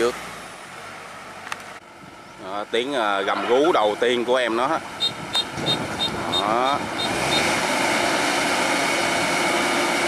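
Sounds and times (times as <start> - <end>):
combine harvester engine running: 0.0 - 10.0.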